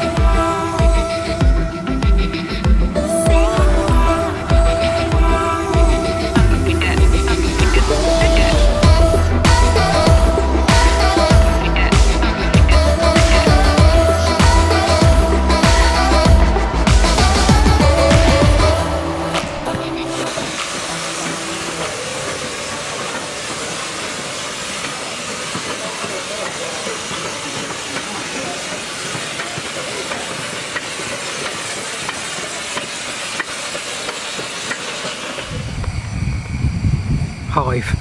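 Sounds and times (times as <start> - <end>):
low rumble: 0.0 - 20.8
steam train hissing: 0.0 - 38.0
person speaking: 3.0 - 23.1.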